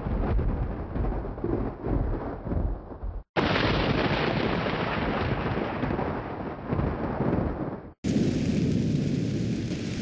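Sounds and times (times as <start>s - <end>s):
rumble of thunder: 0.0s - 10.0s
heavy rain hissing: 8.1s - 10.0s.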